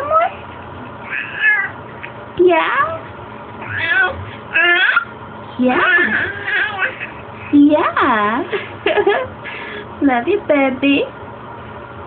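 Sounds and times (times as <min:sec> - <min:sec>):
baby cooing: 0:01.0 - 0:01.8, 0:03.6 - 0:05.1, 0:05.7 - 0:07.2.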